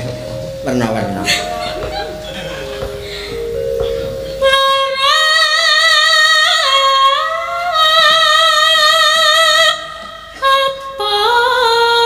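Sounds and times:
woman singing into a microphone: 3.9s - 12.0s.

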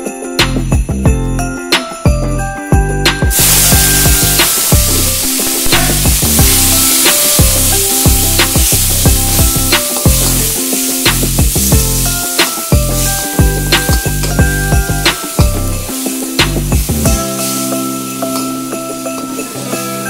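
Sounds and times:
background music with a beat: 0.0s - 20.0s
food sizzling in hot oil: 3.3s - 20.0s.

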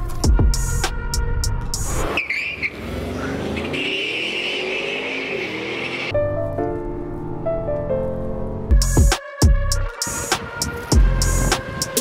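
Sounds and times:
music with drum beat: 0.0s - 1.0s, 8.7s - 12.0s
car accelerating hard: 1.9s - 6.1s
music with piano-like notes: 6.1s - 12.0s.

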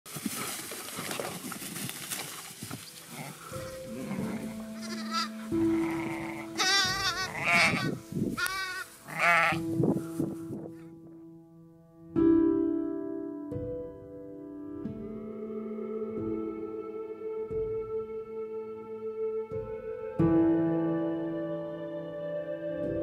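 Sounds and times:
soft music with held notes: 1.0s - 23.0s
sheep bleating: 3.1s - 9.7s.

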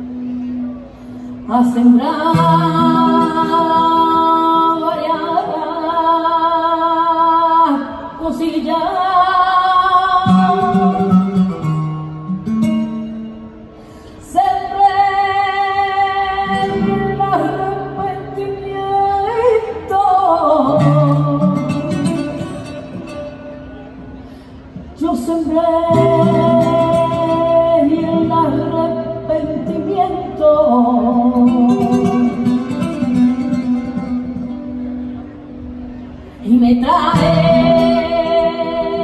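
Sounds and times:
flamenco guitar: 0.0s - 39.0s
woman singing with vibrato: 1.3s - 11.8s, 14.2s - 23.4s, 24.9s - 34.8s, 36.4s - 39.0s.

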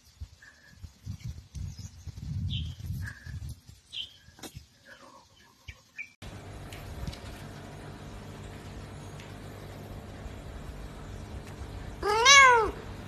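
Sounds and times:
uneven low rumbling: 6.2s - 13.0s.

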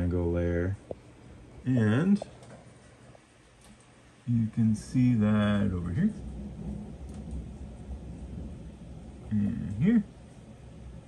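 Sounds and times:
low background rumble: 4.1s - 11.0s.

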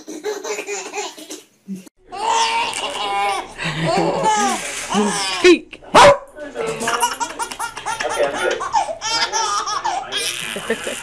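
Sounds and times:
baby laughing: 0.0s - 1.5s, 2.1s - 5.4s, 6.8s - 11.0s
sharp dog bark: 6.0s - 6.3s.

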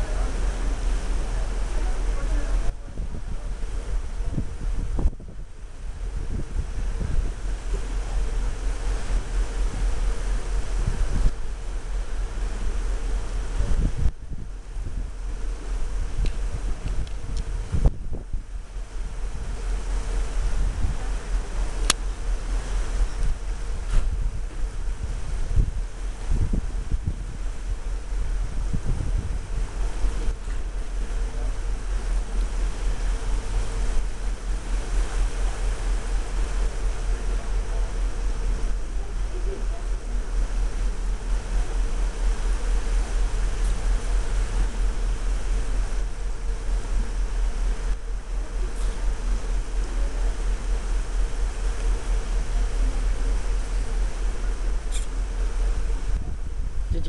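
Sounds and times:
mechanical hum with steady tone: 0.0s - 57.0s
wind buffeting microphone: 0.0s - 57.0s.

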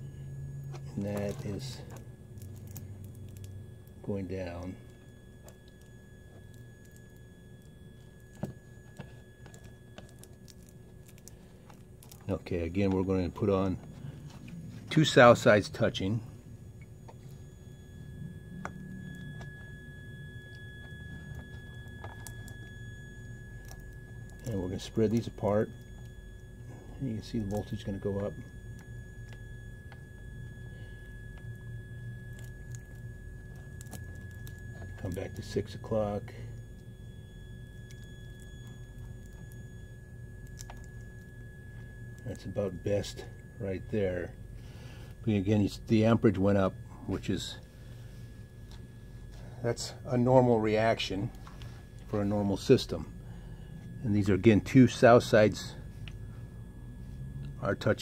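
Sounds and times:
faint high-pitched tone: 0.0s - 58.0s
high-pitched transformer whine: 0.0s - 58.0s
low hum: 0.0s - 58.0s.

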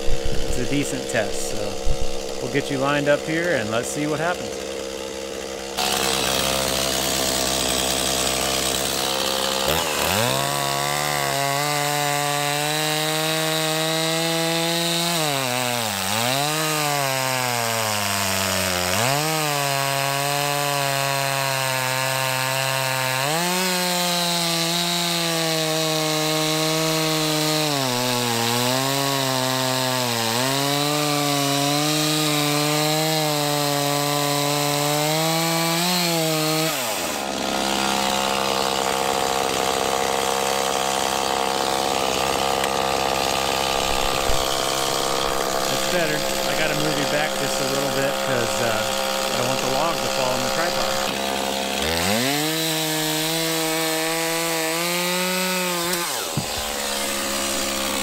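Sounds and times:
chainsaw revving: 0.0s - 58.0s
chainsaw sawing through log: 0.0s - 58.0s.

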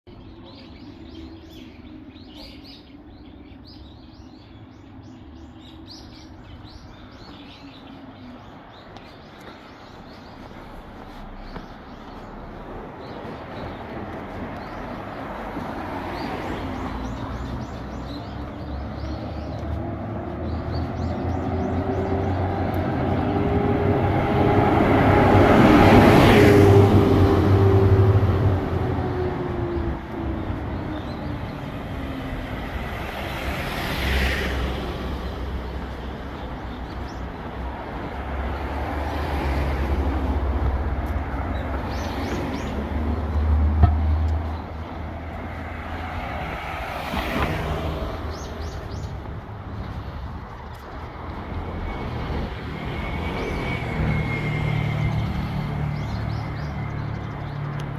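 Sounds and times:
steady road rumble: 0.0s - 57.9s
vehicles passing: 0.1s - 57.9s.

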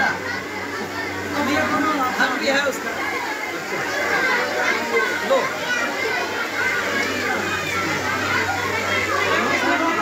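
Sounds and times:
children babbling and calling: 0.0s - 10.0s.

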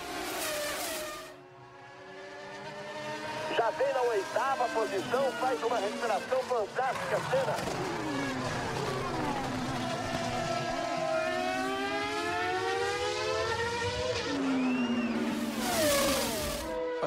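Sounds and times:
race car engines at high revs: 0.0s - 17.0s.

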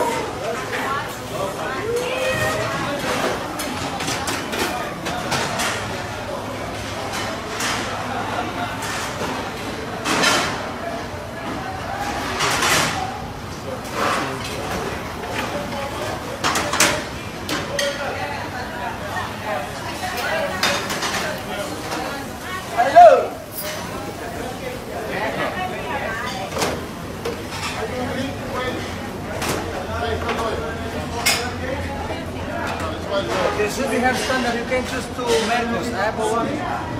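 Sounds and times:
dishes and pans clattering: 2.4s - 10.8s, 12.0s - 13.2s, 13.8s - 18.2s, 20.0s - 22.2s, 26.2s - 31.6s, 32.6s - 35.8s.

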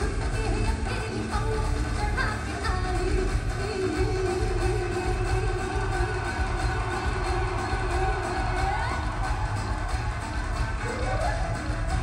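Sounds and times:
live instrumental band music: 0.0s - 12.0s.

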